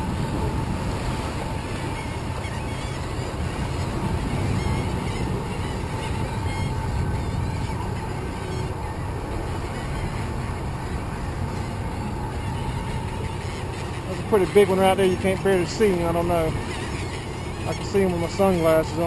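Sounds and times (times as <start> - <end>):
wind noise: 0.0 - 2.4, 3.1 - 13.1
boat motor running: 0.0 - 19.0
steady whine: 0.0 - 19.0
water noise: 0.0 - 19.0.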